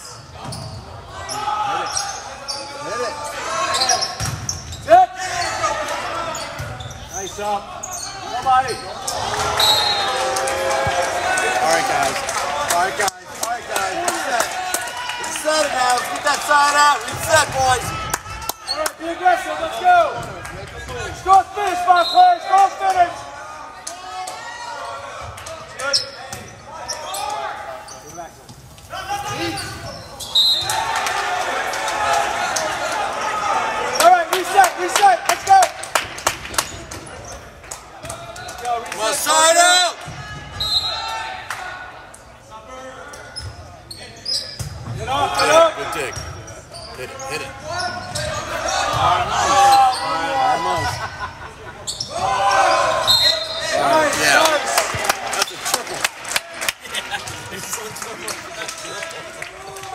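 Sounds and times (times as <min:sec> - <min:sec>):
volleyball hit and bouncing: 0:04.2 - 0:04.6.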